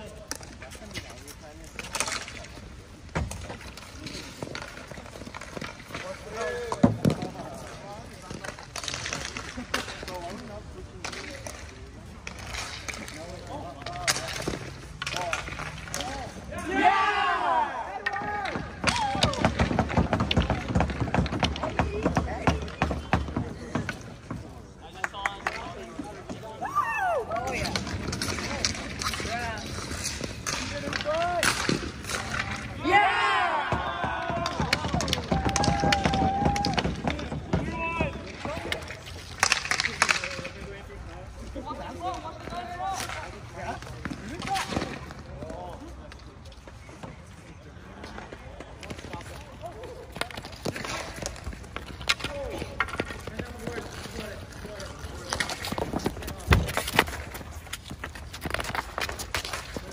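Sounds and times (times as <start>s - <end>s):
sticks and ball clacking: 0.0s - 26.6s, 27.3s - 41.2s, 48.0s - 59.9s
players shouting: 16.5s - 20.3s, 30.8s - 38.4s.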